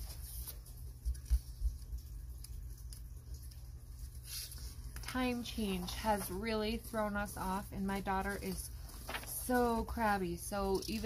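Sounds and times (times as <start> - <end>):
paper rustle: 0.0 - 11.0
steady low hum: 0.0 - 11.0.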